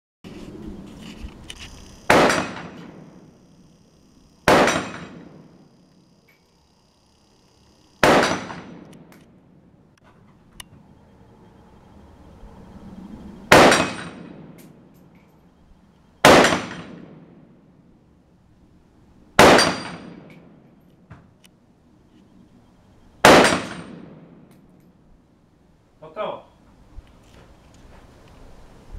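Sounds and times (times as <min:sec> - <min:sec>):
rifle shots with echo: 0:02.0 - 0:03.3, 0:04.4 - 0:05.6, 0:08.0 - 0:09.2, 0:13.5 - 0:14.6, 0:16.2 - 0:17.5, 0:19.4 - 0:20.6, 0:23.2 - 0:24.5.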